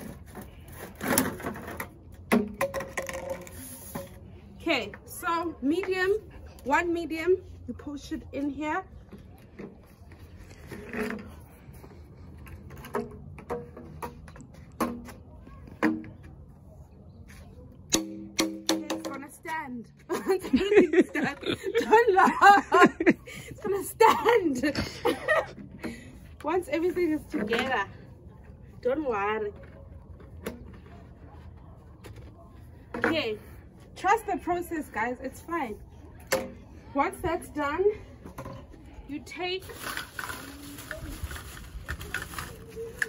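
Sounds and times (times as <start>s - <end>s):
plastic pipes knocking: 18.0s - 19.3s.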